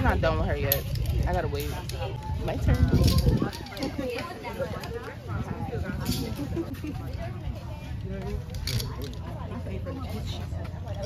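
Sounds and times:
voices: 0:00.0 - 0:11.0
metal buckles clicking and rattling: 0:00.6 - 0:05.0, 0:08.2 - 0:09.3.

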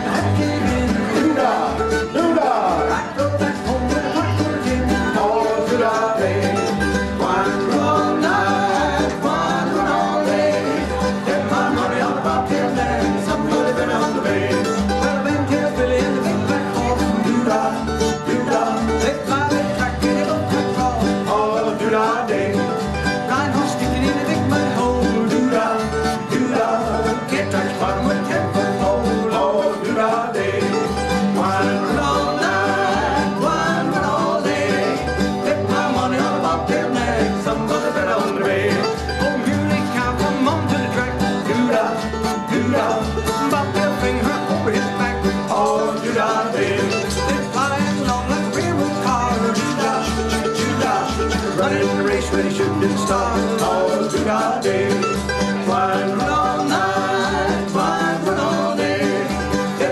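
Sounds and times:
acoustic guitar picking: 0:00.0 - 0:59.9
banjo picking: 0:00.0 - 0:59.9.

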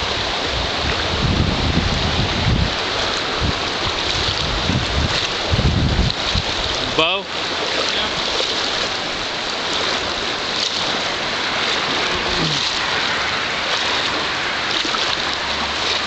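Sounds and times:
river rushing over rocks: 0:00.0 - 0:16.0.

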